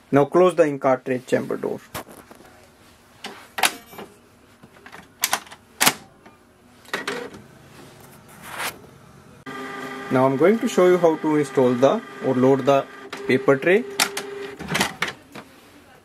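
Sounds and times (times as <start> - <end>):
printer covers clicking shut: 14.0 - 15.2.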